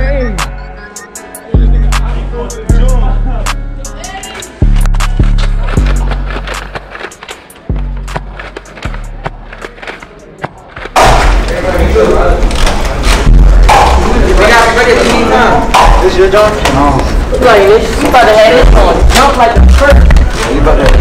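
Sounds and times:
large hall crowd din: 0.0s - 21.0s.

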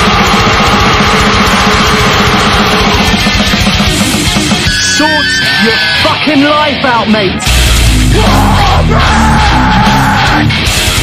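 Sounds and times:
rapid drumming: 0.0s - 5.2s, 7.4s - 11.0s
distorted guitars: 0.0s - 11.0s.

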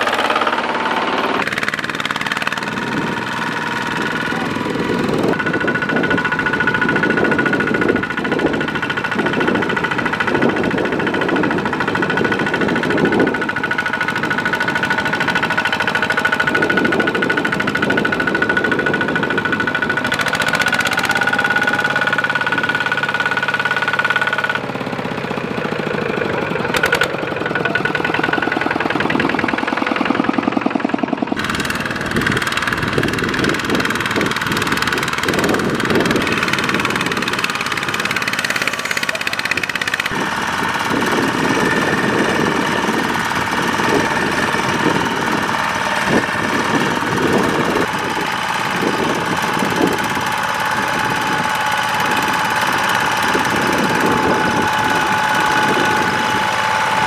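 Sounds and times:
diesel engine under load: 0.0s - 57.0s.

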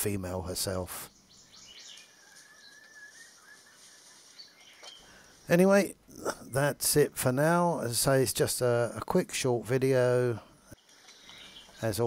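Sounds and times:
distant bird whistled call: 1.1s - 5.4s, 11.1s - 11.8s.

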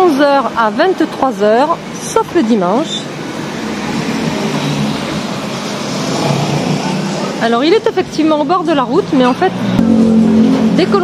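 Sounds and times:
road traffic passing: 0.0s - 11.0s.

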